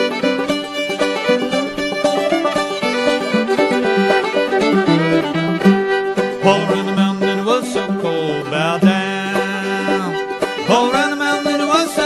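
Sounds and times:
fiddle melody: 0:00.0 - 0:12.0
string accompaniment: 0:00.0 - 0:12.0.

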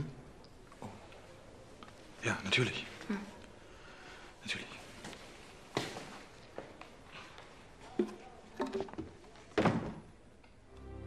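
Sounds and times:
soft background music: 0:10.6 - 0:11.0.

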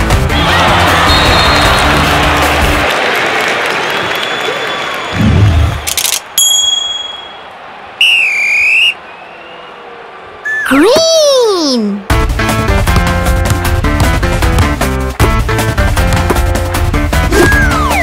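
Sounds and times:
background music: 0:00.0 - 0:03.2, 0:11.9 - 0:18.0
crowd cheering: 0:00.0 - 0:11.8
bell-like ding: 0:06.4 - 0:07.4.

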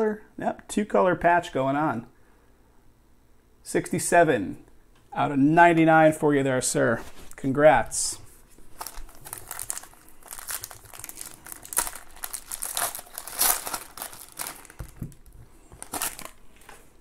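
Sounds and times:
foil wrapper tearing and crinkling: 0:08.7 - 0:16.4.

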